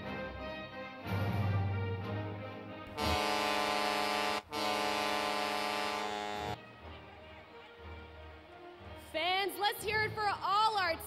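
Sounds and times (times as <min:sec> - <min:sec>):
arena horn blast: 0:02.9 - 0:06.6.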